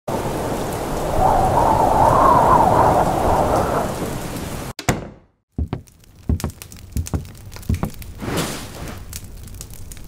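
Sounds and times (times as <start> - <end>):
thunder rumbling: 0.1 - 4.7
rain patter: 0.1 - 4.8, 5.6 - 10.0.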